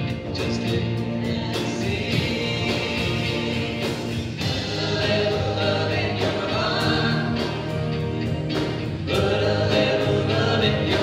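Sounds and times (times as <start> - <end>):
guitar: 0.0 - 11.0
keyboard: 0.0 - 11.0
voices singing: 0.0 - 11.0.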